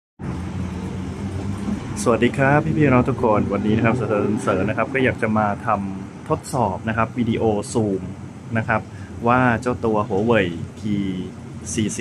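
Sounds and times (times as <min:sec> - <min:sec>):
city traffic rumble: 0:00.2 - 0:12.0.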